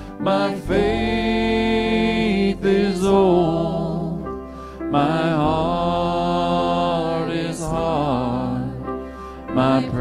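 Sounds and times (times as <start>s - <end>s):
bass: 0.0s - 10.0s
voices singing in unison: 0.0s - 10.0s.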